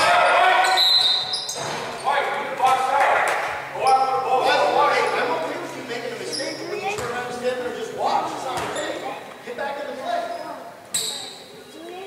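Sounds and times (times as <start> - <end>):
echoing voices: 0.0 - 12.0.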